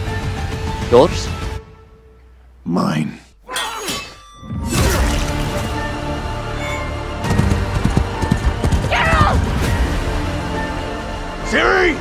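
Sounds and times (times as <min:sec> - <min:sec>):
background music: 0:00.0 - 0:12.0
horses galloping hoofbeats: 0:07.2 - 0:09.5.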